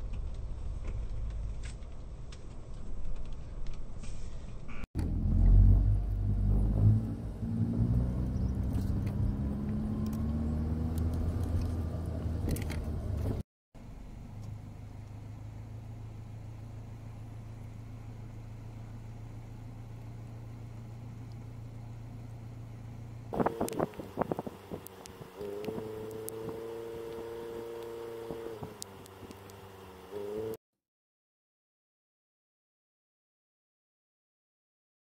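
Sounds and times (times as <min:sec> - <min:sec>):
vehicle engine idling: 0:13.8 - 0:26.2.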